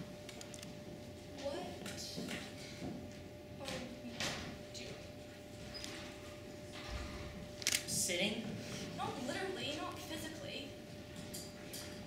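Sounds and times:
sharp clicks: 0:07.6 - 0:07.8.

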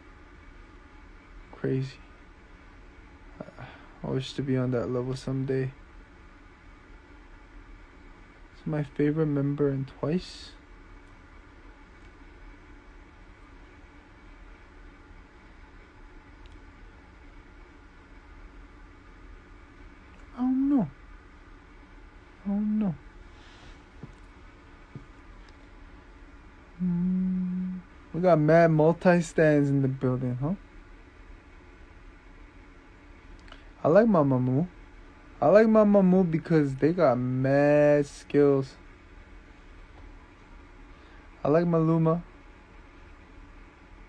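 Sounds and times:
faint steady hiss: 0:00.0 - 0:44.0
low hum: 0:00.0 - 0:44.0
man humming low note: 0:20.2 - 0:21.0, 0:22.4 - 0:23.0, 0:26.7 - 0:28.0.

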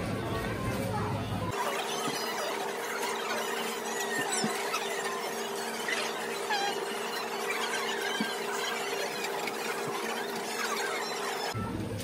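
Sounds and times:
faint high squeaks and chirps: 0:01.6 - 0:11.6.

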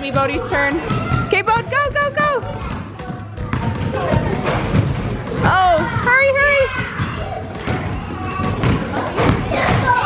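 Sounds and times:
basketballs bouncing on wooden floor: 0:00.0 - 0:10.0
children's voices: 0:05.4 - 0:10.0.

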